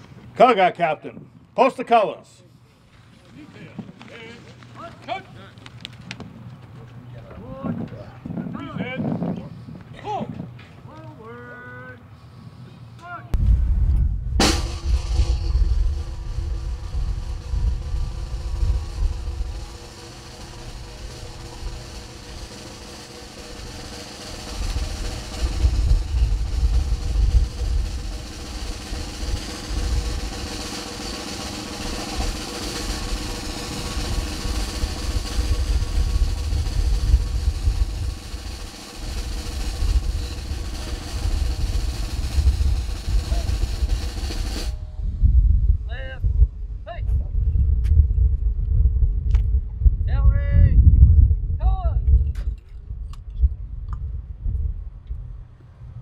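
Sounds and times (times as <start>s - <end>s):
wind rumbling on microphone: 7.2s - 10.6s, 13.4s - 22.7s, 23.6s - 30.9s, 31.7s - 56.0s
military band music: 14.4s - 45.0s.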